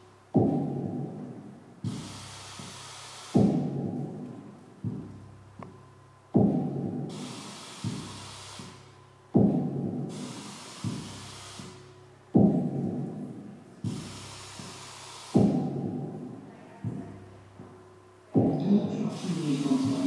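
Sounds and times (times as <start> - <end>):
electronic hiss: 0.0 - 20.0
deep drum-like boom: 0.4 - 2.2, 3.4 - 5.3, 6.4 - 7.1, 9.4 - 10.1, 12.4 - 14.2, 15.4 - 17.7, 18.4 - 19.0.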